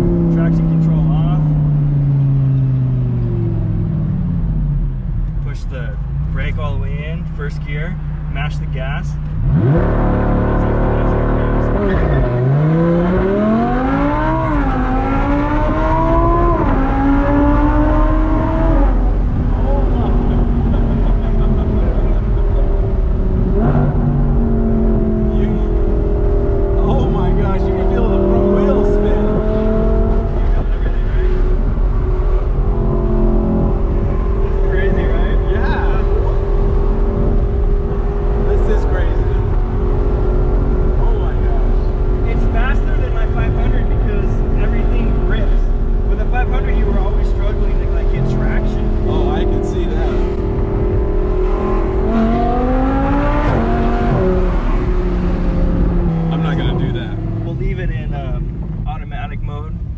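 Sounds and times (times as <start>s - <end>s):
car engine at full throttle: 0.0s - 59.9s.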